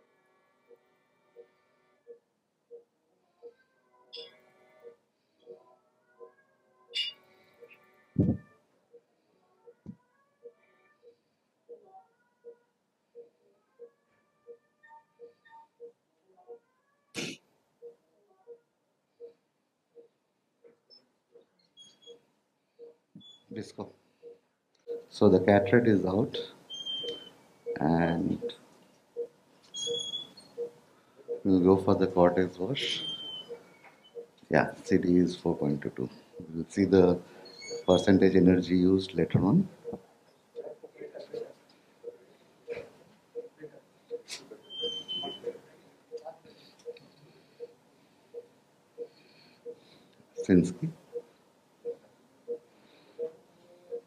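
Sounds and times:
faint steady tones: 0.0 - 16.9, 17.5 - 54.0
high-pitched electronic chirp: 4.1 - 4.4, 6.9 - 7.8, 37.5 - 38.0
short low beeps: 7.0 - 7.2.

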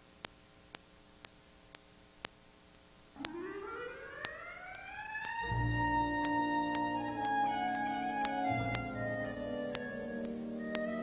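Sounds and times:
soft ticks: 0.2 - 3.4, 9.7 - 10.9
siren-like gliding tone: 3.2 - 10.2.

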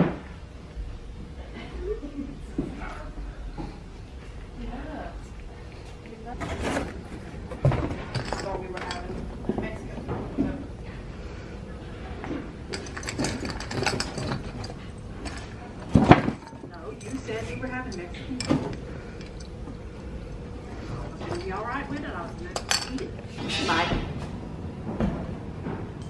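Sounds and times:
objects knocking and clunking: 6.4 - 10.6, 12.3 - 26.0.

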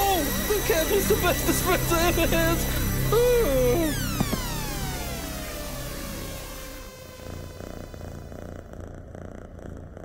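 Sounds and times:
cat purring: 0.0 - 10.0
falling electronic tone: 1.4 - 8.3.

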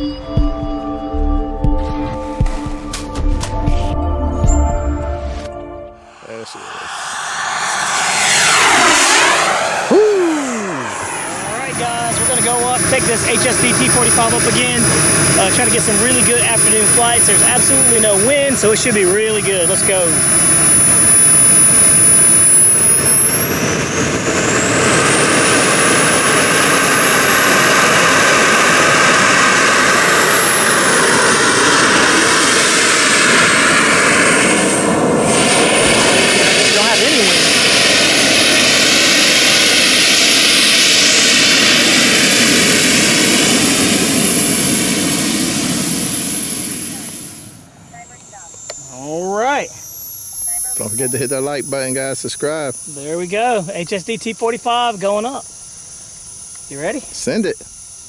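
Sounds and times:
model jet turbine whining: 6.1 - 58.0.

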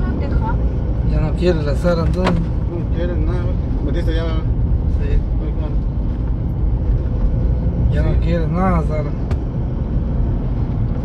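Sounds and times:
road noise: 0.0 - 11.0
truck engine rumble: 0.0 - 11.0.

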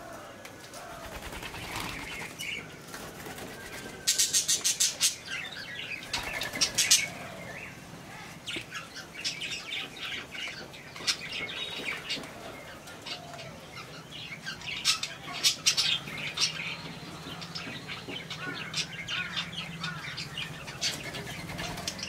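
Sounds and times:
budgerigars chattering: 4.1 - 7.8, 13.8 - 22.0.

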